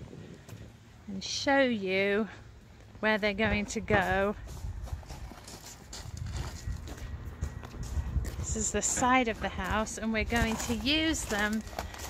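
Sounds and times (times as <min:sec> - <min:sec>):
footsteps on concrete: 0:02.7 - 0:12.0
low microphone rumble: 0:06.0 - 0:11.6.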